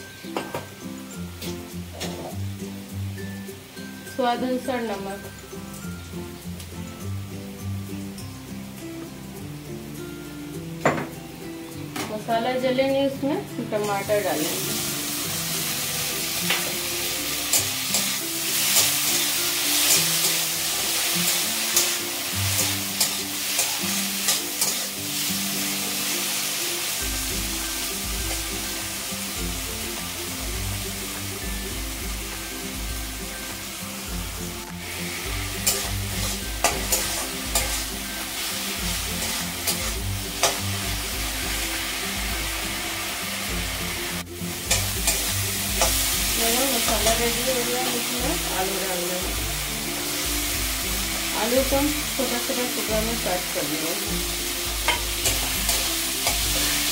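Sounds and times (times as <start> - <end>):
food sizzling in hot oil: 0.0 - 56.9
metal spatula scraping pan: 17.4 - 25.3, 34.8 - 40.7.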